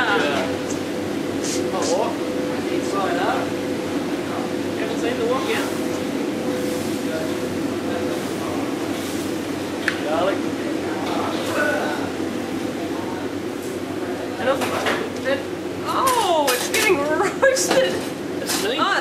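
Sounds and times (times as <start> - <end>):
kitchen equipment humming: 0.0 - 19.0
voices: 0.0 - 19.0.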